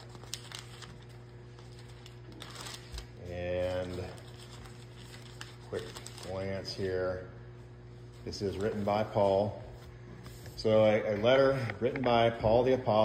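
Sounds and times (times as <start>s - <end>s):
paper rustling: 0.0s - 6.8s, 8.0s - 10.6s
steady low hum: 0.0s - 13.0s.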